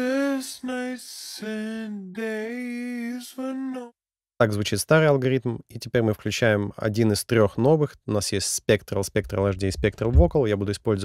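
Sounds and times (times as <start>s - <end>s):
slowed sung vocal notes: 0.0s - 3.9s.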